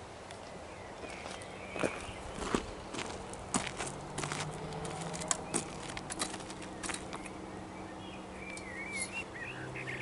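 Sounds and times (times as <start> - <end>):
footsteps crunching on gravel: 1.0 - 7.4.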